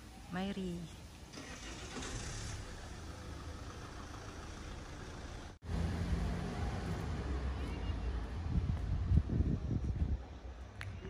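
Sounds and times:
faint street noise: 0:00.0 - 0:11.0
vehicle engine running: 0:02.0 - 0:07.4.

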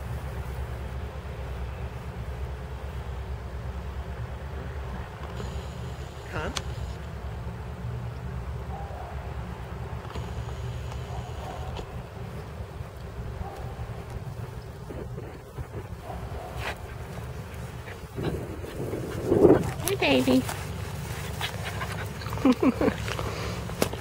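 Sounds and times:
wind rumbling on microphone: 0:12.7 - 0:22.4.

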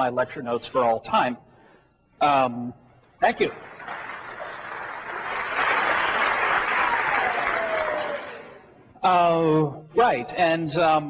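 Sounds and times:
audience applause: 0:03.6 - 0:08.7.

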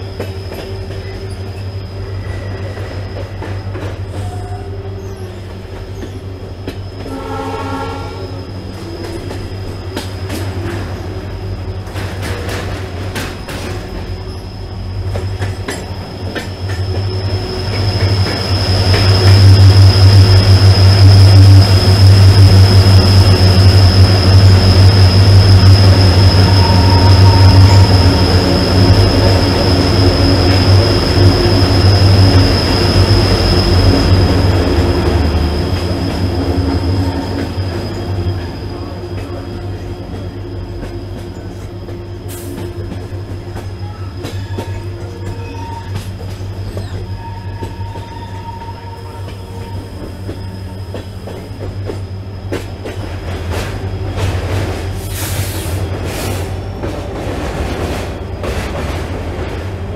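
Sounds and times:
high-pitched wheel squeal: 0:00.0 - 0:10.8, 0:15.4 - 0:52.5
train wheel rumble: 0:00.0 - 0:59.9.

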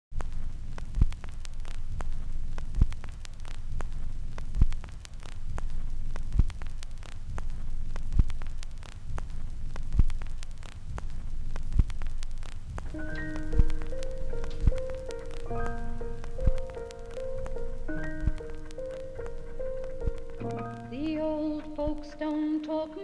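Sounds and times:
crackling static: 0:00.1 - 0:23.0.

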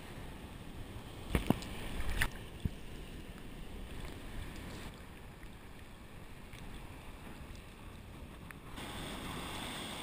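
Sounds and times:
ocean water swirling around pilings: 0:00.0 - 0:10.0
hissy surf: 0:08.7 - 0:10.0.

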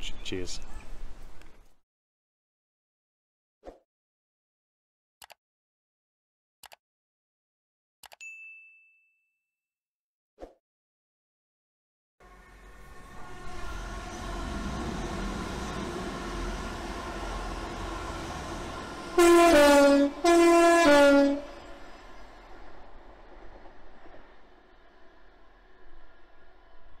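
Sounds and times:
two-tone train horn: 0:12.2 - 0:21.8
train engine: 0:12.2 - 0:27.0.

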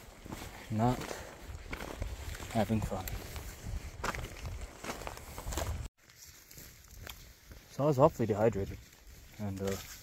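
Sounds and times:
footsteps on loose rock: 0:00.0 - 0:07.7.

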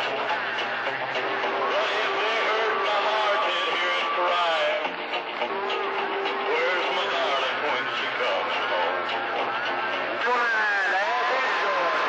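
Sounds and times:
steady whistling tones: 0:00.0 - 0:12.0
overlapping voices over radio: 0:00.1 - 0:12.0.

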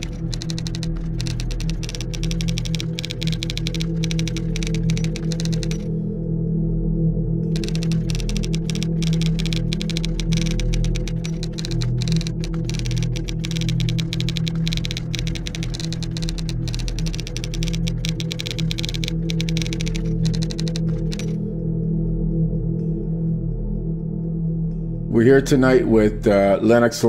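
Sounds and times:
keyboard typing clicks: 0:00.0 - 0:05.9, 0:07.6 - 0:21.4
ambient background music: 0:00.0 - 0:27.0.

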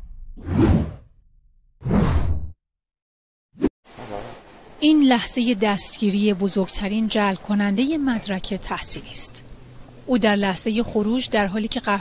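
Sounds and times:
whoosh sound effects: 0:00.0 - 0:01.0.

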